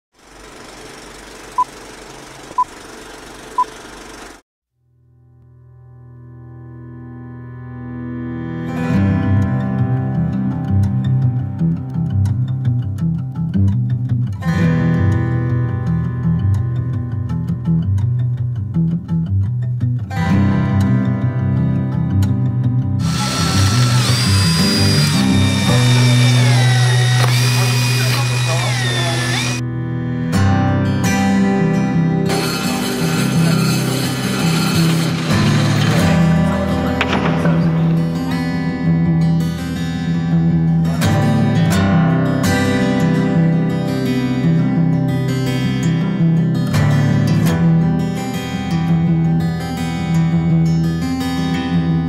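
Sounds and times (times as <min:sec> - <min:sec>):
guitar music: 0:05.0 - 0:52.0
power drill boring into metal: 0:23.0 - 0:29.6, 0:32.3 - 0:38.1.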